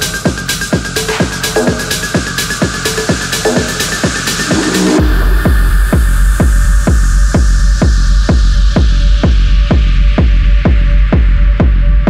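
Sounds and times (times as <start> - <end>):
kick drum: 0.0 - 12.0
held bass: 3.2 - 10.5
sustained synth tones: 4.2 - 6.6.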